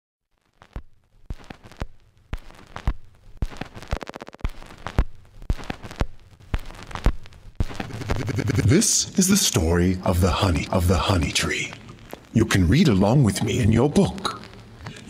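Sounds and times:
sharp cracks and pops: 0:00.3 - 0:08.6, 0:10.6 - 0:12.4.

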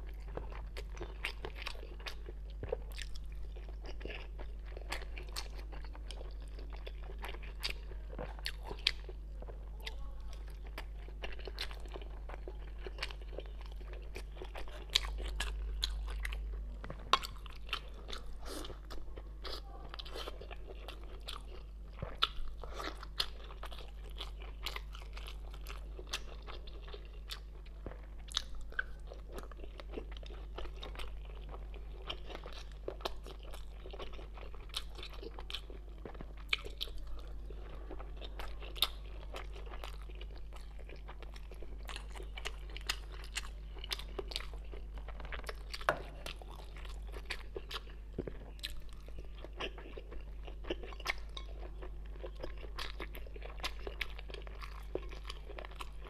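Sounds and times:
close chewing and mouth sounds: 0:00.0 - 0:56.0
faint low hum: 0:00.0 - 0:56.0.

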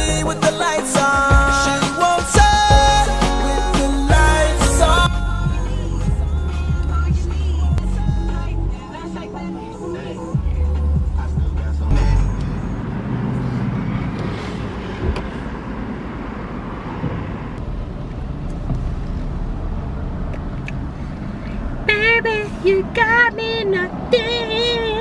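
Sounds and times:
music with heavy bass beat: 0:00.0 - 0:12.7
engine and road rumble in car: 0:02.5 - 0:25.0.

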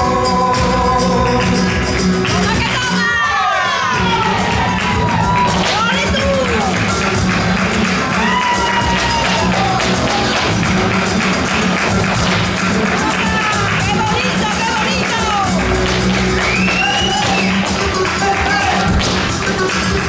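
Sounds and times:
acoustic guitars: 0:00.0 - 0:20.0
cajon drumming: 0:00.0 - 0:20.0
hand clapping: 0:00.0 - 0:20.0.

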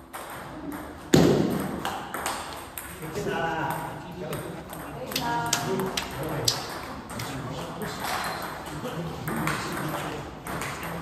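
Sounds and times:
table tennis ball clicking: 0:03.7 - 0:07.3.

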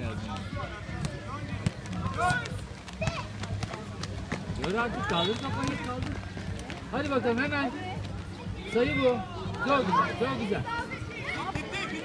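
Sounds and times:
footsteps on hard court: 0:00.2 - 0:08.6.

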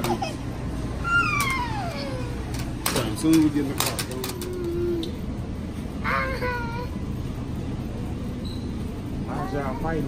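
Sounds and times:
toddler crying and whining: 0:01.0 - 0:02.6, 0:06.0 - 0:07.0.

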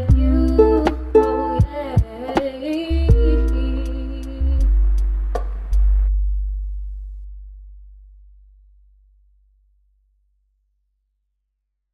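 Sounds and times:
deep bass note ringing: 0:03.0 - 0:10.6.

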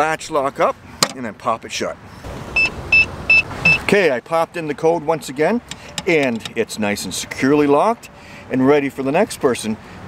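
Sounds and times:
keypad beeps: 0:02.6 - 0:03.8.

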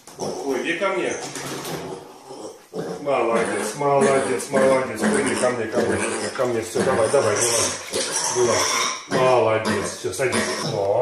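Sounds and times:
pig grunting: 0:00.0 - 0:11.0.

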